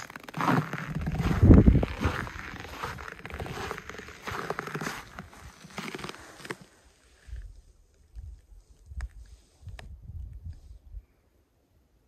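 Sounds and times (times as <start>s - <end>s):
footsteps crunching in snow: 0.0s - 7.2s
low microphone rumble: 0.7s - 4.1s.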